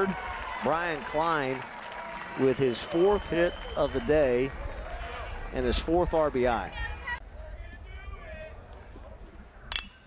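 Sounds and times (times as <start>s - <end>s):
metal bat striking ball: 9.7s - 10.0s.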